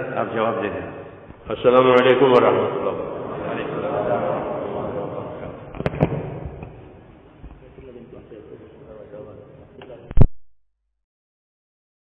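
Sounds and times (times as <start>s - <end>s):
murmur of voices: 0.0s - 10.1s.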